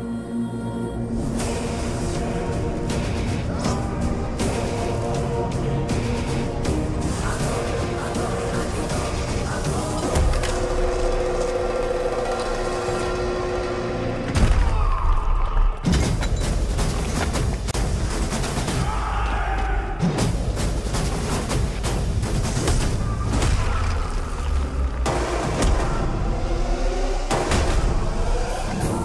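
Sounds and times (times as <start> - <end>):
dramatic film score: 0.0 - 29.0.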